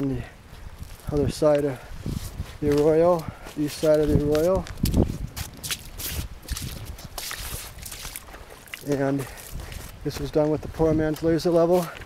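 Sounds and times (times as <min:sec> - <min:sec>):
footsteps on rocky dirt: 0:00.4 - 0:12.0.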